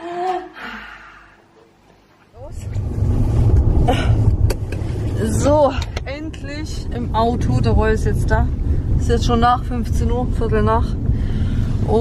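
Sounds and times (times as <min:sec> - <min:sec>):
low rumble inside car: 0:02.4 - 0:12.0.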